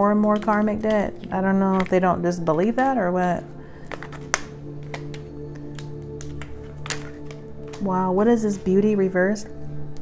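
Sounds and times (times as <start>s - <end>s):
background music low chord: 0.0s - 10.0s
cards clicking: 3.8s - 7.9s.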